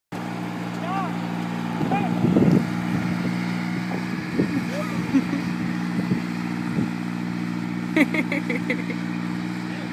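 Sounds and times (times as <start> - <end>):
vehicle engine running: 0.1 - 9.9.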